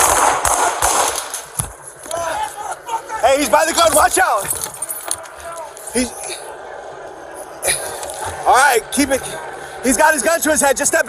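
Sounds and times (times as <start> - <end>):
low background noise: 0.0 - 11.0
man speaking: 2.1 - 6.5.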